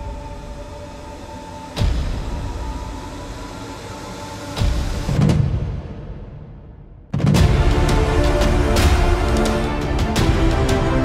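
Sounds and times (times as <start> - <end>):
sustained droning pad: 0.0 - 5.2.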